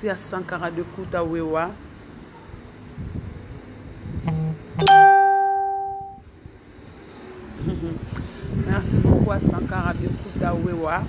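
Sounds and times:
two-note chime: 4.3s - 6.2s.

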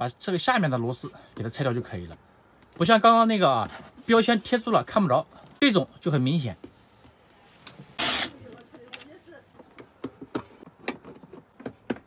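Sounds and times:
drill-driver whirring: 8.0s - 8.3s
clicks and taps on plastic: 8.9s - 12.0s.

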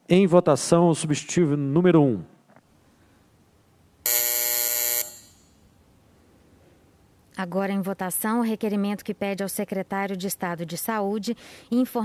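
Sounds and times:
electronic buzzer: 4.0s - 5.6s.

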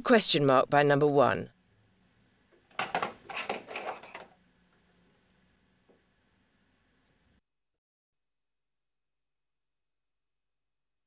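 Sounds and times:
papers rustling: 2.6s - 4.4s.

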